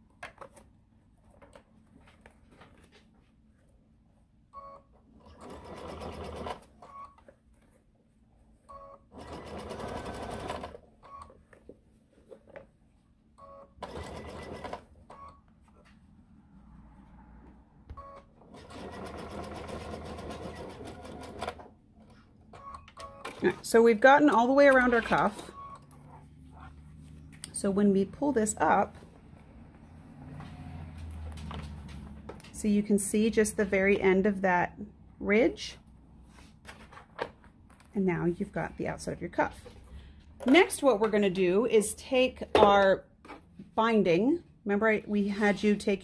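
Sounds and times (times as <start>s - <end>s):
sewing machine stitching: 5.2s - 6.6s, 9.1s - 10.8s, 13.8s - 14.8s, 18.4s - 21.7s.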